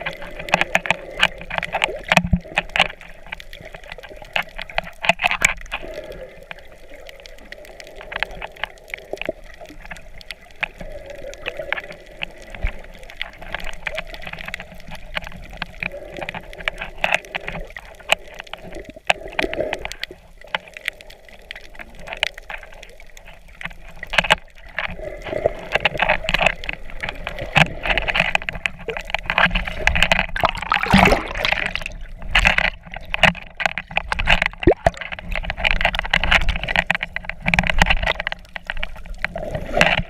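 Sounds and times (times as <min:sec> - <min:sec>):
sharp clicks and crackles: 0:00.0 - 0:40.0
water sloshing and gurgling underwater: 0:00.0 - 0:40.0.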